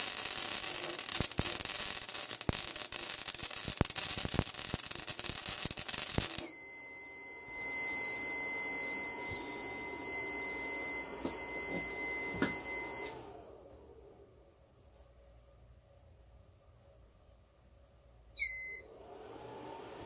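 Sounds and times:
welder arc crackling: 0:00.0 - 0:06.5.

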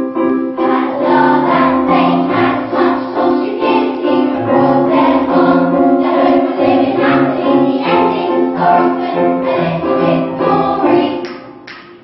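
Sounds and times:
musical accompaniment: 0:00.0 - 0:12.0
children singing together: 0:00.5 - 0:11.6.

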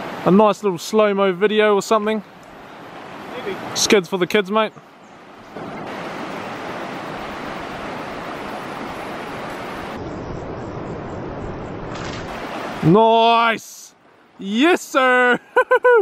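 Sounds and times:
river water rushing: 0:00.0 - 0:15.3.

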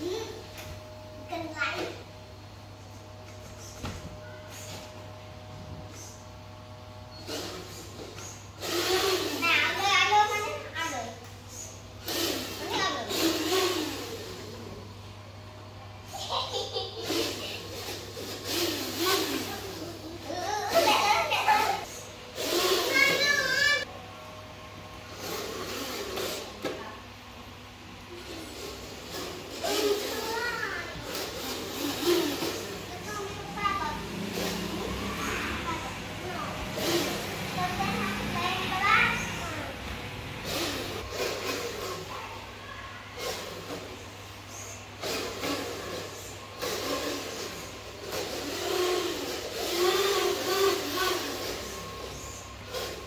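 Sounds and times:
toy truck motor and gears: 0:07.1 - 0:14.8, 0:16.2 - 0:23.9, 0:25.1 - 0:27.0, 0:28.1 - 0:42.5, 0:43.2 - 0:53.0.

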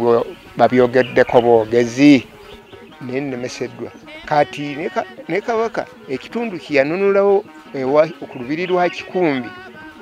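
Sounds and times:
man speaking: 0:00.0 - 0:02.3, 0:03.0 - 0:09.6.

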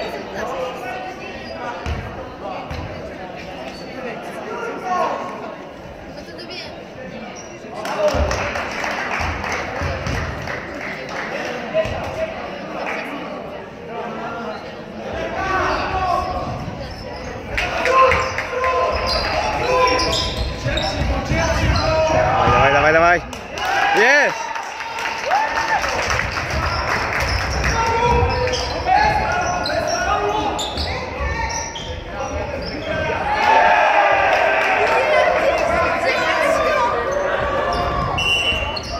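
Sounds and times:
voices in a hall: 0:00.0 - 0:38.9
players shouting: 0:32.6 - 0:38.9.

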